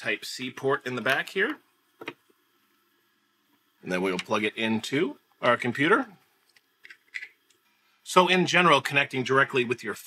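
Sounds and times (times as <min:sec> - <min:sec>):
person speaking: 0:00.0 - 0:01.7, 0:03.8 - 0:06.3, 0:08.0 - 0:10.0.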